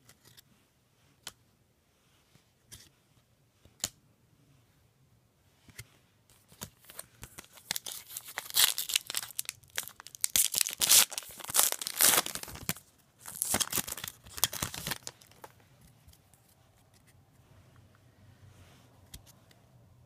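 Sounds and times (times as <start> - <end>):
foil wrapper tearing and crinkling: 6.8 - 15.5.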